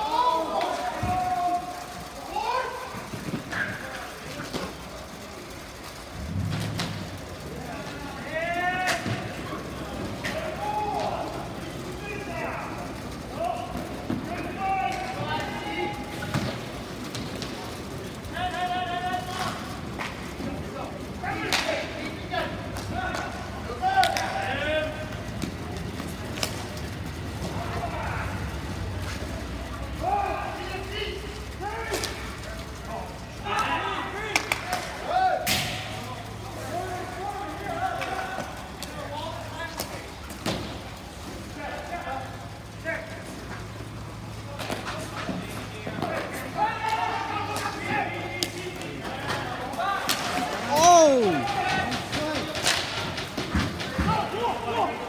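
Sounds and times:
players calling out: 0.0 - 55.0
hockey sticks and ball clacking: 7.8 - 55.0.

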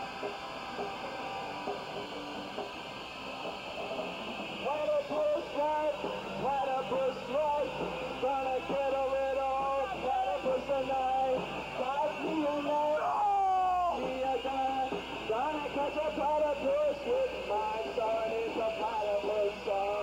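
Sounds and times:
live punk band: 0.0 - 20.0
person singing: 4.6 - 20.0.

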